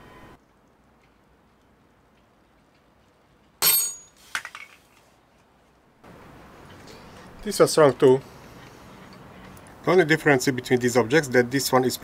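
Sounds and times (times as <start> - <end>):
steel hooks clinking: 3.6 - 4.2.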